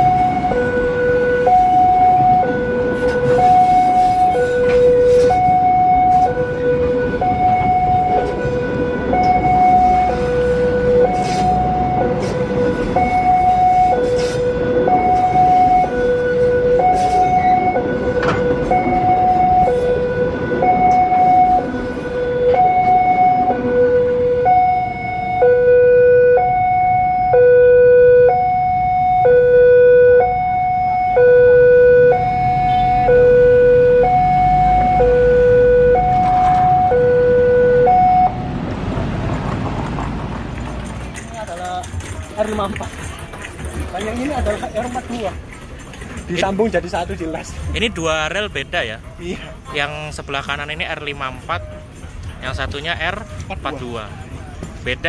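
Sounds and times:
level crossing two-tone alarm: 0:00.0 - 0:38.4
train wheels clacking and rumbling: 0:38.8 - 0:48.7.

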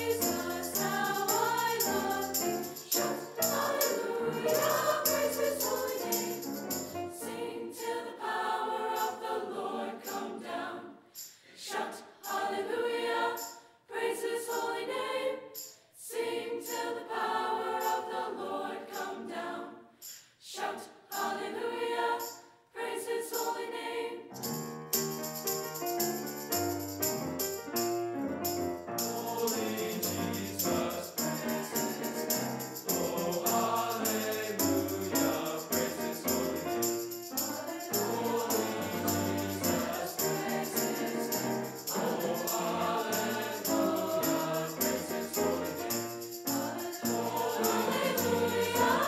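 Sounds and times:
choir singing in harmony: 0:00.0 - 0:24.6, 0:28.8 - 0:49.0.

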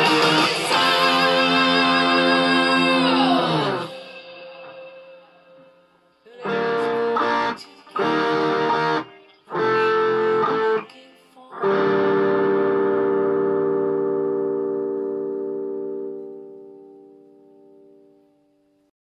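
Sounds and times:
distorted electric guitar chords: 0:00.0 - 0:10.9, 0:11.6 - 0:18.9.

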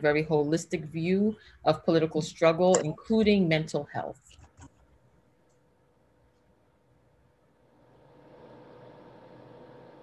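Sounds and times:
faint room and microphone hiss: 0:00.0 - 0:09.7
faint steady hum: 0:00.0 - 0:10.0.

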